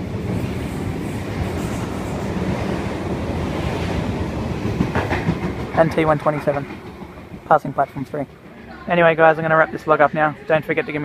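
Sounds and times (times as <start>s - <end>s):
train wheels rumbling on rails: 0.0s - 9.6s.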